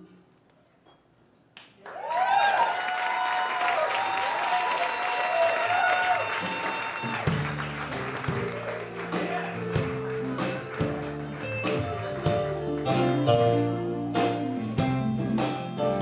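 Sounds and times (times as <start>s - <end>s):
audience applause and cheering: 1.8s - 13.3s
music with plucked guitar: 7.9s - 16.0s.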